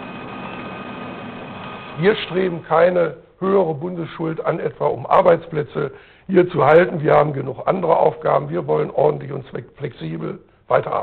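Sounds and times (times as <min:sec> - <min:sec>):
office machines humming: 0:00.0 - 0:03.0.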